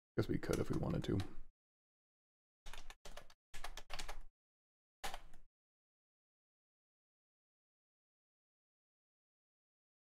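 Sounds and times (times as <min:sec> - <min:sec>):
keyboard and mouse clicks: 0:00.5 - 0:01.4, 0:02.7 - 0:04.3, 0:05.0 - 0:05.4.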